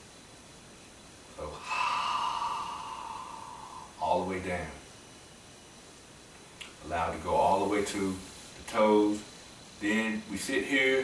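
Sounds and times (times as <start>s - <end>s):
man breathing out: 1.5s - 4.0s.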